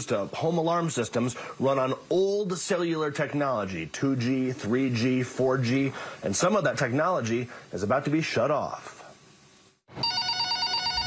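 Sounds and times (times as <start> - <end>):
telephone ringing: 9.9 - 11.0.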